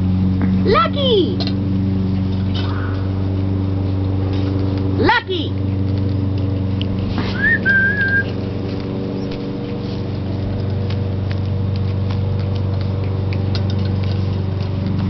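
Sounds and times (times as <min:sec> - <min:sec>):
low mechanical hum: 0:00.0 - 0:15.0
person whistling: 0:07.3 - 0:08.3.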